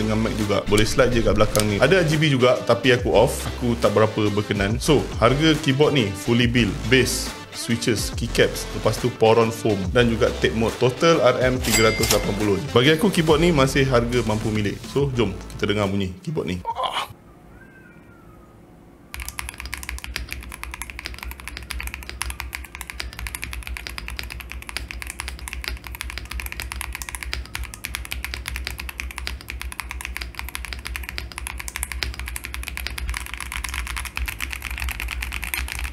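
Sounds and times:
fast mechanical keyboard typing: 0.7s - 1.8s, 19.1s - 35.9s.

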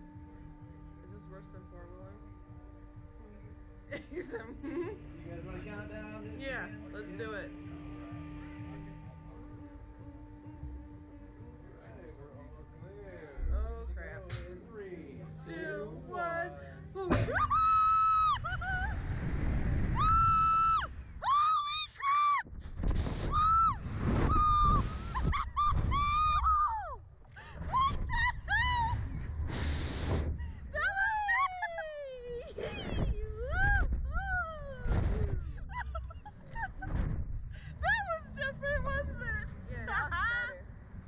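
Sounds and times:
wind rumble: 16.9s - 41.0s
people screaming: 17.1s - 22.5s, 23.3s - 29.3s, 30.7s - 36.7s.

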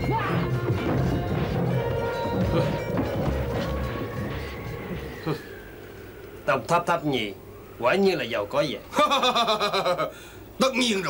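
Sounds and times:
rhythmic action music: 0.0s - 5.4s.

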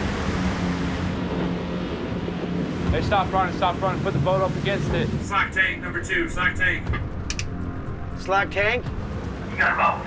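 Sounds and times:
boat machinery drone: 0.0s - 10.0s.

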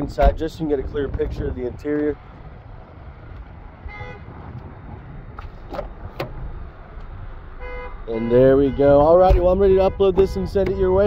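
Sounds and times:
wind rumble on microphone: 0.0s - 11.0s
car door unlatching and opening: 5.3s - 7.2s, 9.2s - 9.6s.

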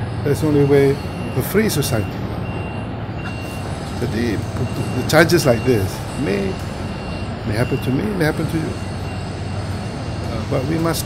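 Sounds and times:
vehicle engine rumble: 0.0s - 11.0s
thin high-pitched beep: 0.4s - 11.0s.

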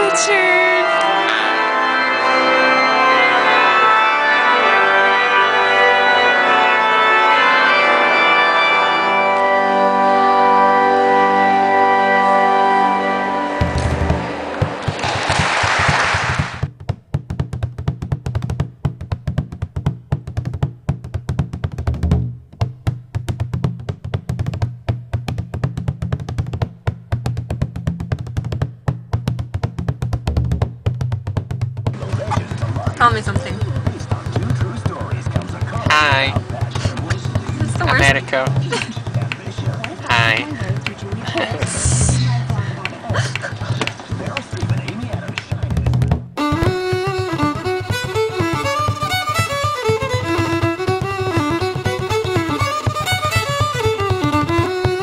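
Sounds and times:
pipe organ chords: 0.6s - 14.8s, 46.4s - 55.0s.

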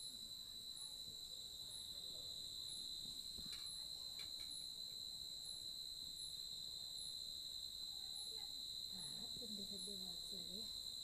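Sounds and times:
crickets trilling: 0.0s - 11.0s
high insect chirp: 0.0s - 11.0s.

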